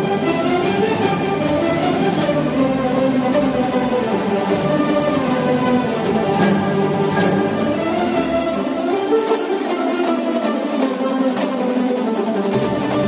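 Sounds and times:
plucked string instrument melody: 0.0 - 13.0.

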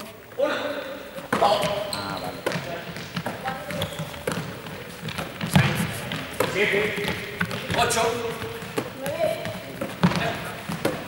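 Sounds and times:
players' voices: 0.0 - 11.0.

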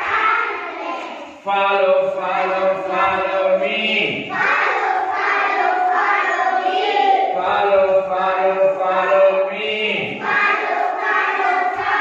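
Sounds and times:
children chanting a song: 0.0 - 12.0
man's deeper voice: 1.4 - 4.3, 7.3 - 10.2.

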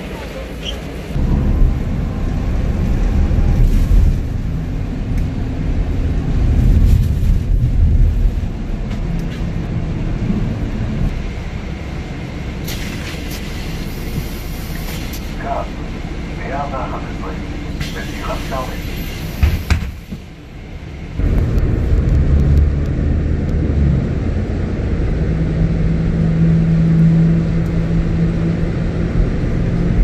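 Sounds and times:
passengers talking: 0.0 - 1.2, 10.6 - 21.0
bus engine and road rumble: 0.0 - 30.0
pneumatic air hiss: 12.6 - 15.3.

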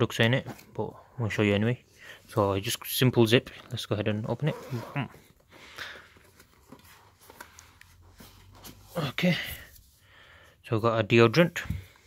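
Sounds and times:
zipper opening: 4.3 - 5.3.

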